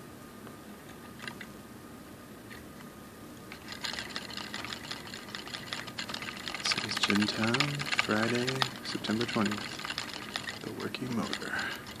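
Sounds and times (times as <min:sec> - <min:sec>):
motor coil rattling in supports: 0:03.5 - 0:12.0.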